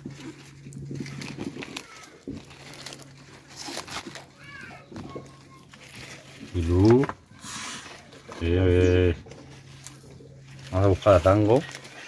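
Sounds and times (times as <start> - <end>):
tortoises chewing leaves: 0.0 - 12.0.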